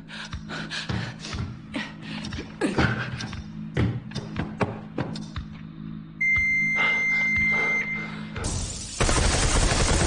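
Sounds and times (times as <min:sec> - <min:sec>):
electronic alarm beep: 0:06.2 - 0:08.2.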